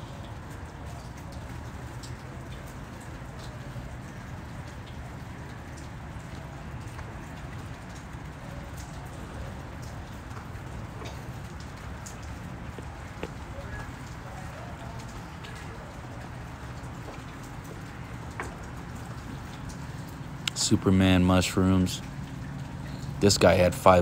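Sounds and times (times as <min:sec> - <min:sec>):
aquarium water trickling: 0:00.0 - 0:24.0
faint drip-like clicks: 0:00.0 - 0:24.0.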